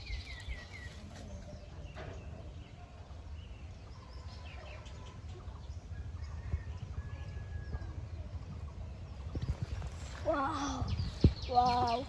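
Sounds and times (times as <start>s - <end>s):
distant bird calls: 0.0s - 12.0s.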